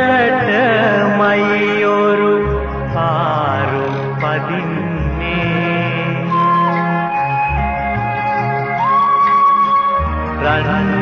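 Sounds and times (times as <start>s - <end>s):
song with instrumental backing: 0.0s - 11.0s.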